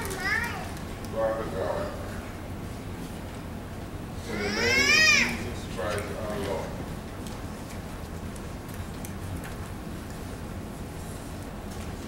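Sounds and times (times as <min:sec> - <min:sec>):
child calling out: 0:00.0 - 0:00.7, 0:04.3 - 0:05.4
low room hum: 0:00.0 - 0:12.0.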